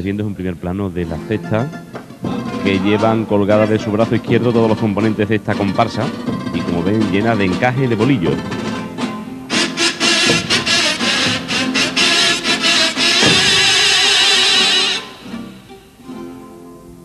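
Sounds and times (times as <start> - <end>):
guitars playing: 0.8 - 17.0
kazoos buzzing melody: 1.0 - 16.0
sharp drum strokes: 3.8 - 15.8.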